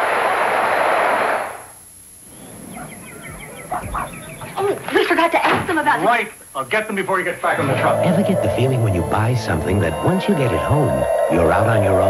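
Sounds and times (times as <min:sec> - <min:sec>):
faint high chirps: 0:02.3 - 0:04.6, 0:07.6 - 0:12.0.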